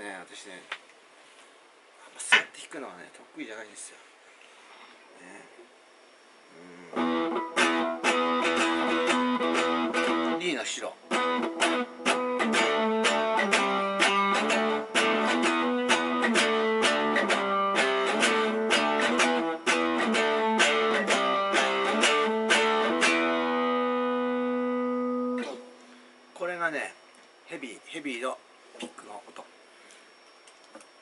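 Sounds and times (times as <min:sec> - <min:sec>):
electric guitar riff: 0:06.6 - 0:26.2
person speaking: 0:10.3 - 0:11.1.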